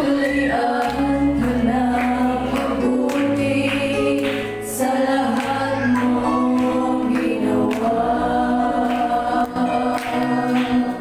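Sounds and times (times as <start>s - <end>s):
women singing worship song: 0.0s - 11.0s
live band with keyboard: 0.1s - 11.0s.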